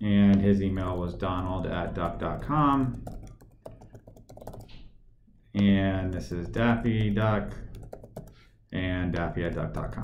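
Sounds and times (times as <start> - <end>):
computer keyboard typing: 0.3 - 4.9, 5.6 - 8.4, 9.2 - 10.0.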